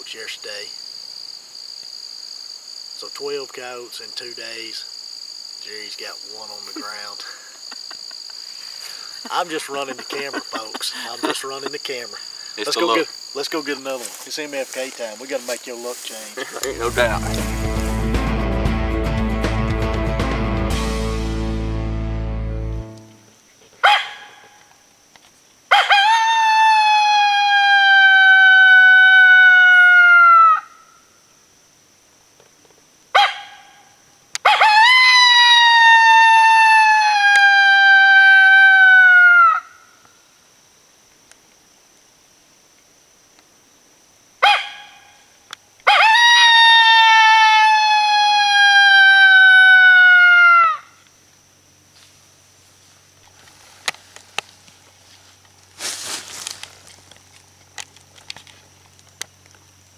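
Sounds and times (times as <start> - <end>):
mouth call imitating coyote howl: 25.7 - 30.8, 34.4 - 39.8, 45.8 - 51.0.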